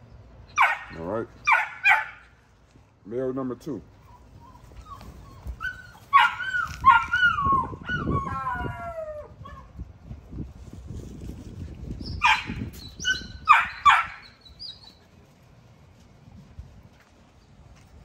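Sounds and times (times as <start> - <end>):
puppies yelping: 3.9 - 9.7, 12.0 - 15.1
puppies whining: 4.0 - 9.7, 12.0 - 15.1.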